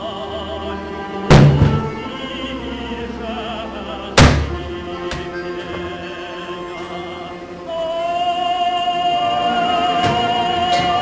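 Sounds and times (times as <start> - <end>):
background music: 0.0 - 11.0
operatic singing: 0.0 - 11.0
plastic bin lid banging open: 1.3 - 1.9.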